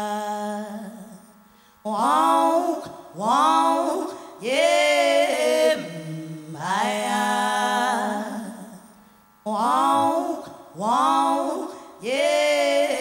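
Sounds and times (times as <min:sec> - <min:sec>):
woman singing unaccompanied: 0:00.0 - 0:01.3, 0:01.9 - 0:13.0.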